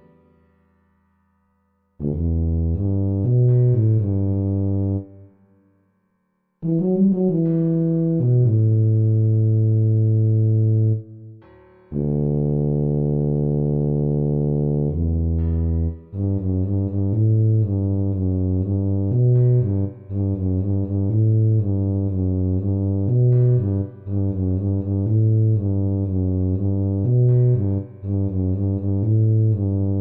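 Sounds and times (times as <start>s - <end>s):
tuba melody: 2.0s - 5.3s, 6.6s - 11.2s, 11.9s - 30.0s.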